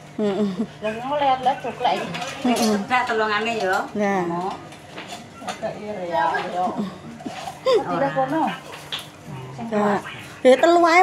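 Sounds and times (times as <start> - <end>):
woman laughing and chattering: 0.2 - 0.9, 6.7 - 8.1.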